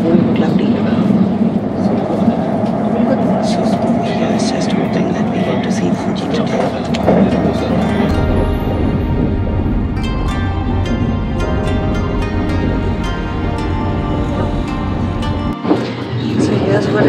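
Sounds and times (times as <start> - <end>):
train passing alongside: 0.0 - 17.0
train rumble inside carriage: 0.0 - 17.0.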